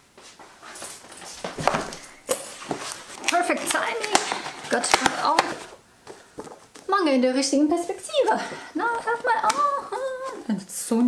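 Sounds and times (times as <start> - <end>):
rustling and movement: 0.1 - 11.0.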